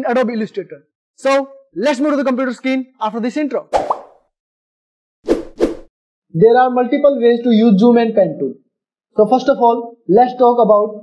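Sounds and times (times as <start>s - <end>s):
pop sound effects: 3.7s - 4.2s.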